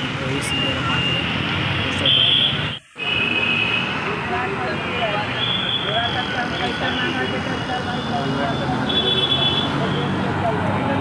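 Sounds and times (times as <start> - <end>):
busy street traffic: 0.0 - 11.0.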